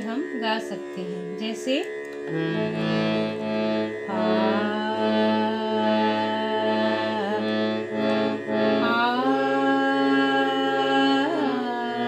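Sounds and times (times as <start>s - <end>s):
harmonium chord: 0.0s - 12.0s.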